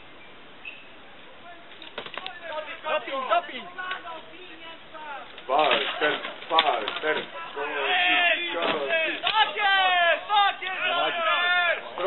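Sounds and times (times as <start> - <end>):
men shouting: 2.3 - 12.0.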